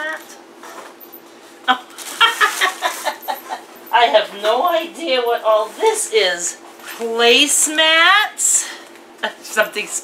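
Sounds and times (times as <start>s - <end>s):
woman laughing: 1.7s - 3.7s, 9.2s - 9.6s.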